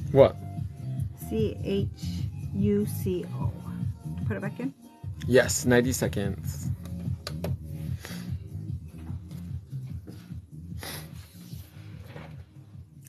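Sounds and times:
music with low bass line: 0:00.0 - 0:13.0.

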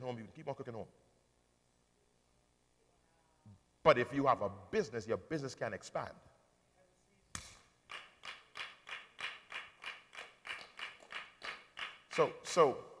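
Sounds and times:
hands clapping: 0:07.4 - 0:12.3.

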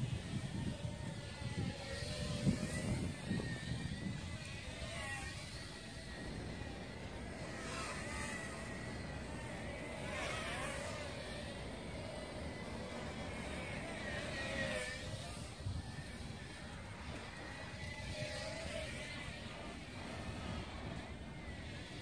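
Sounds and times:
quadcopter motors whining: 0:00.0 - 0:22.0.

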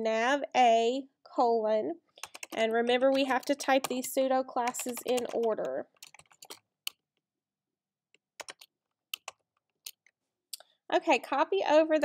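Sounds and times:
computer keyboard typing: 0:02.2 - 0:07.0, 0:08.4 - 0:10.1.

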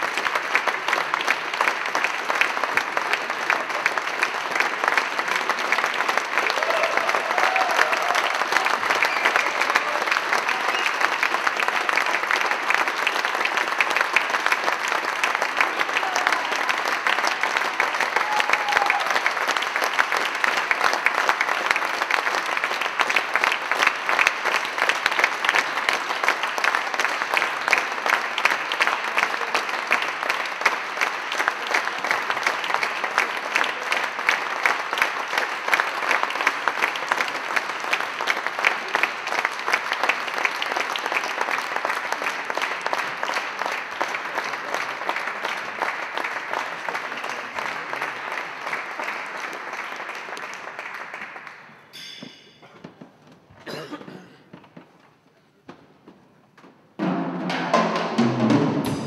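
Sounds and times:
audience applauding: 0:00.0 - 0:51.9.

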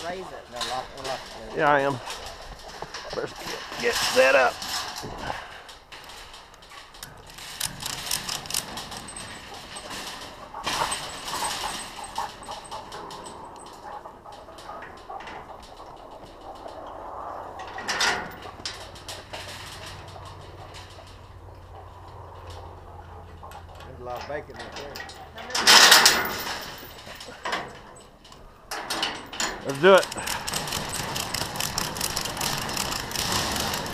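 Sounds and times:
chain and hooks clinking: 0:00.0 - 0:33.9.

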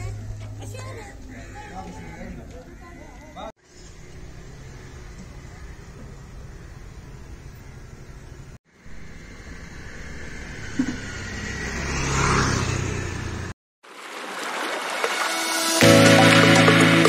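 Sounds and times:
street ambience: 0:00.0 - 0:17.0
vehicle engine approaching: 0:03.6 - 0:13.6.

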